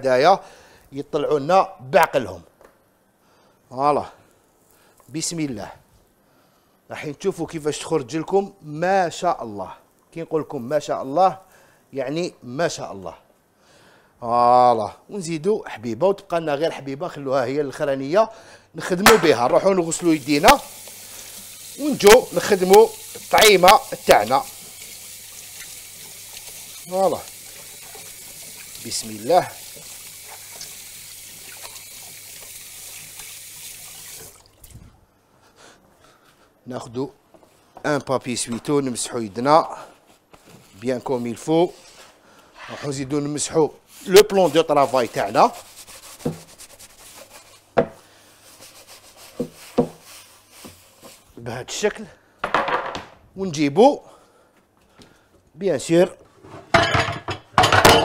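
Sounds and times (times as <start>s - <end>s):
pots and dishes clattering: 56.6s - 58.0s.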